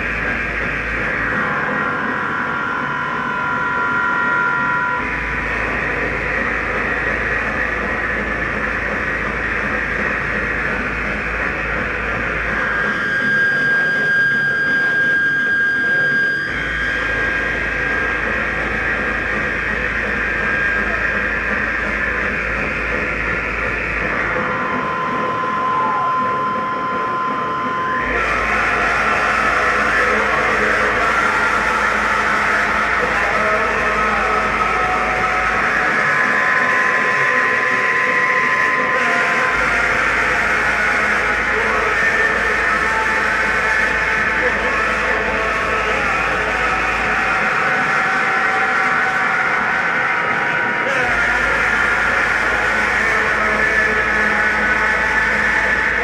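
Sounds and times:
distorted noise and drone: 0.0s - 56.0s
steady whistling tones: 0.0s - 56.0s.

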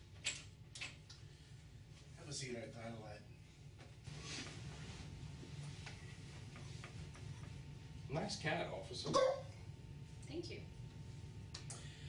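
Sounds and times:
low steady room hum: 0.0s - 12.0s.

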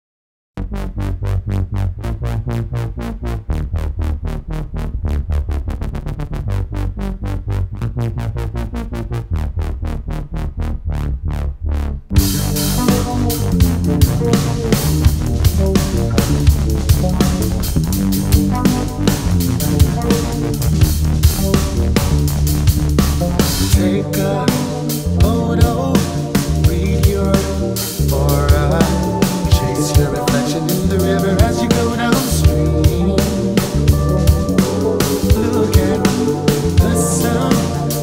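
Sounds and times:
pulsing repeated notes: 11.7s - 38.0s
instrumental band music: 12.1s - 38.0s
drum kit with cymbals: 12.2s - 38.0s.

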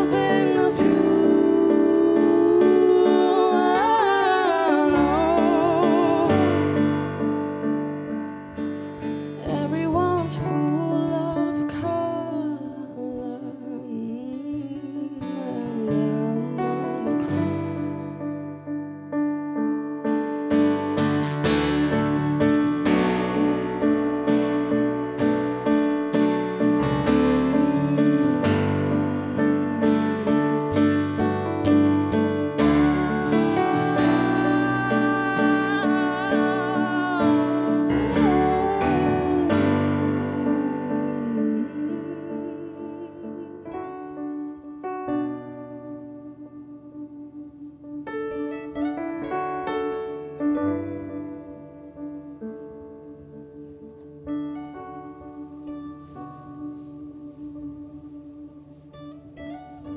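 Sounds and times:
voices singing in harmony: 0.0s - 7.1s, 27.0s - 45.3s, 54.8s - 59.4s
acoustic guitar: 0.0s - 59.9s.

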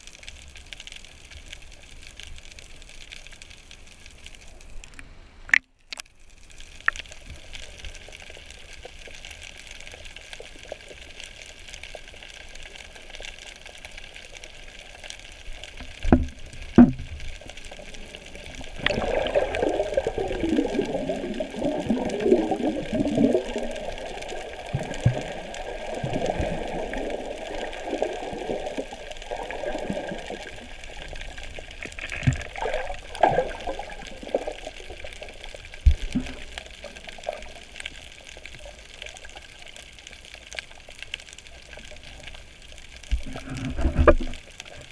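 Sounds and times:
water bubbling and sloshing: 4.1s - 44.9s.

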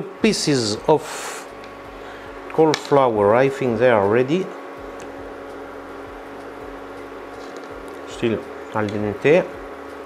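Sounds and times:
induction hob humming: 0.0s - 10.0s.

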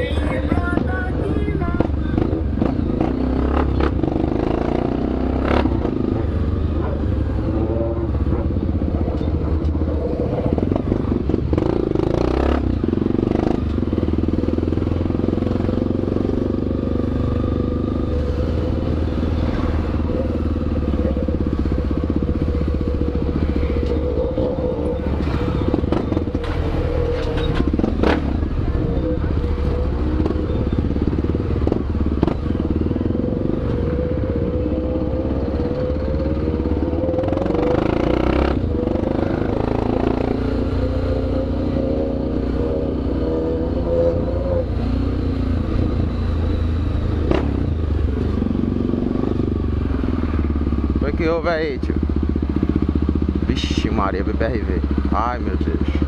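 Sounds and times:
motorcycle engine at low revs: 1.7s - 56.0s.

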